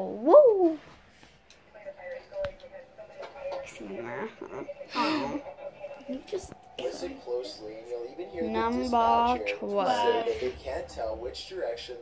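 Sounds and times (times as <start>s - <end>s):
faint television speech: 0.0s - 12.0s.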